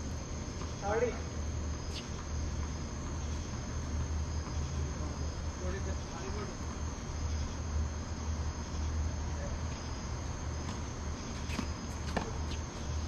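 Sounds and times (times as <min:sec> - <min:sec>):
crickets chirring: 0:00.0 - 0:13.0
steady low hum: 0:00.0 - 0:13.0.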